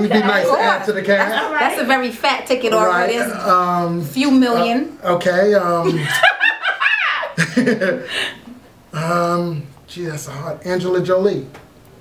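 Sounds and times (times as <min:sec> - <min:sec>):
people laughing together: 0:05.8 - 0:08.5.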